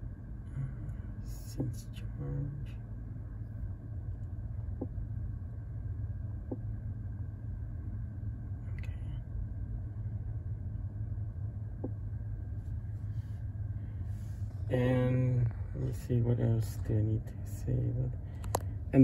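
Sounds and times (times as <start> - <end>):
low rumble in car cabin: 0.0 - 19.0.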